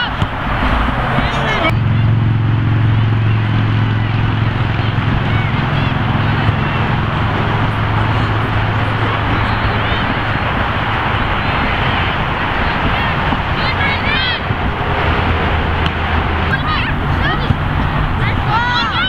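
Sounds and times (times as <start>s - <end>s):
faint distant shouts: 0.0s - 19.0s
loud rushing noise: 0.0s - 19.0s
low mechanical drone: 0.0s - 19.0s.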